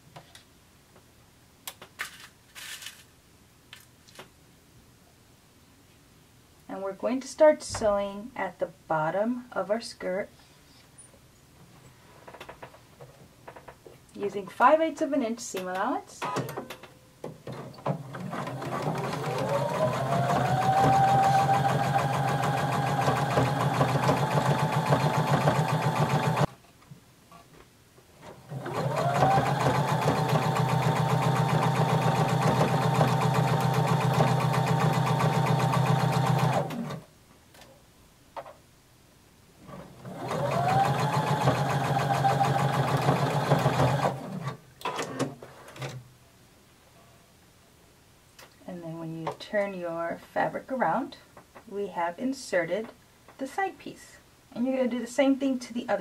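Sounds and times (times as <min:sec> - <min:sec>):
sewing machine stitching: 0:17.8 - 0:26.5, 0:28.4 - 0:37.0, 0:39.7 - 0:44.6.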